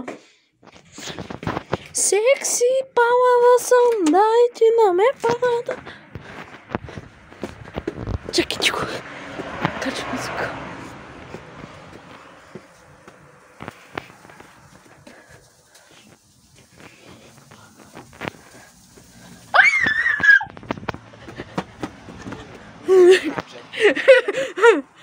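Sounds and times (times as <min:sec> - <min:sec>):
footsteps: 0:00.0 - 0:02.5, 0:05.0 - 0:23.6
woman speaking: 0:01.9 - 0:06.0, 0:08.3 - 0:09.1, 0:09.8 - 0:10.7.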